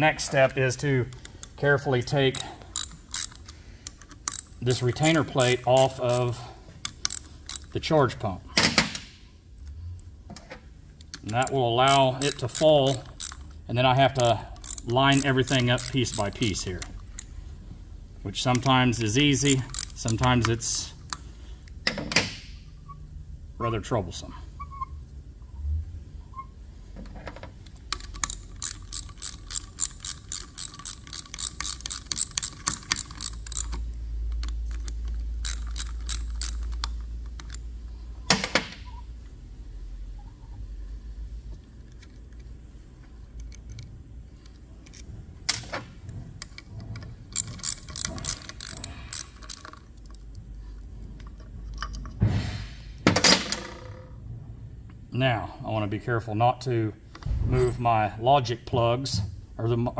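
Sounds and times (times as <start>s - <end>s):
metal parts clicking: 1.1s - 7.8s, 11.0s - 17.4s, 18.4s - 21.8s, 27.6s - 37.7s, 41.8s - 52.2s.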